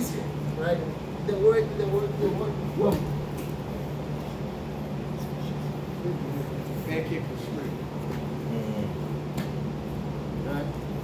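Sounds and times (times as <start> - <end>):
fan humming: 0.0 - 11.0.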